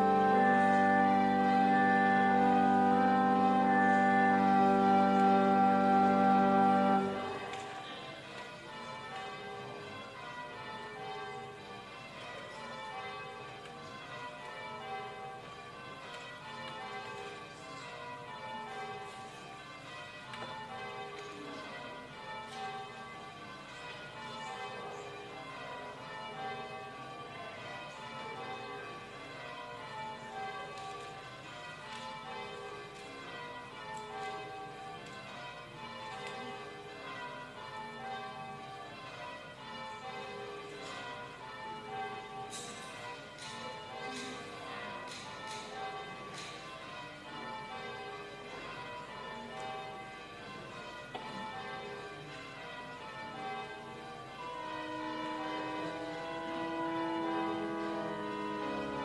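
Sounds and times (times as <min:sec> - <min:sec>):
church bells ringing changes: 0:00.0 - 0:59.0.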